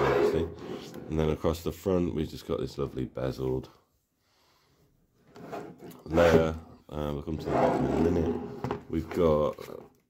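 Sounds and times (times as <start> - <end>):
plastic laptop case scratching: 7.4 - 9.8.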